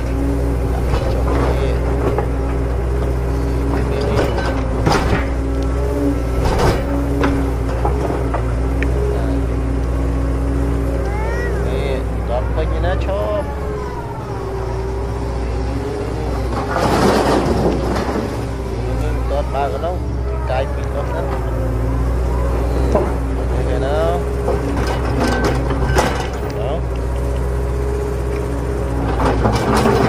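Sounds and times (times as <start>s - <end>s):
background voices: 0.0s - 27.6s.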